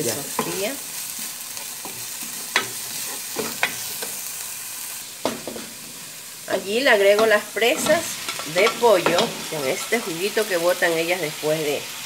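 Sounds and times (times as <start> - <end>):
onions sizzling in hot oil: 0.0 - 12.0.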